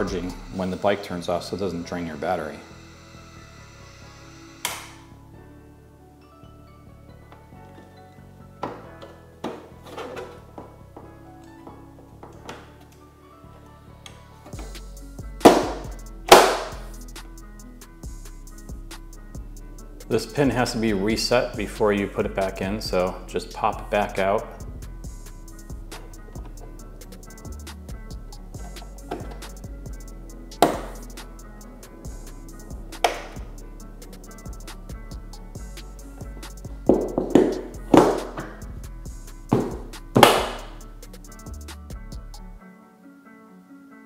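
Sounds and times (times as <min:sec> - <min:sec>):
background music: 0:00.0 - 0:44.0
plastic panel thumps: 0:28.6 - 0:29.5, 0:39.5 - 0:40.7.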